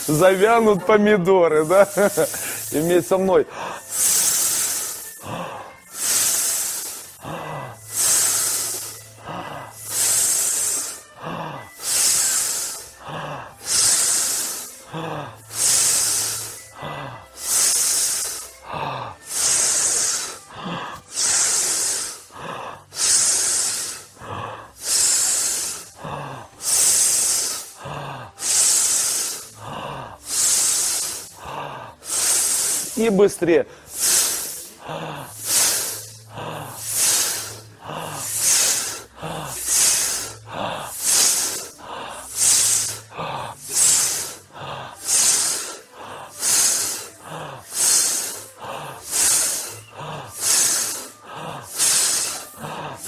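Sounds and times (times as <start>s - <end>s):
people exhaling hissed sss: 0.0s - 0.6s, 1.6s - 3.1s, 3.8s - 33.1s, 33.8s - 53.0s.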